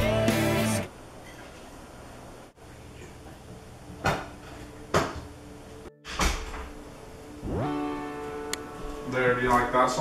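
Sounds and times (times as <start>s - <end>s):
music from stereo: 0.0s - 0.9s, 7.4s - 10.0s
rising swoop into held notes: 7.3s - 9.2s.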